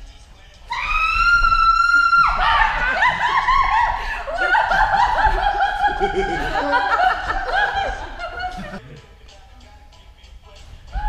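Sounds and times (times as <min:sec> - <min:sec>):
people laughing loudly: 0:01.7 - 0:09.1.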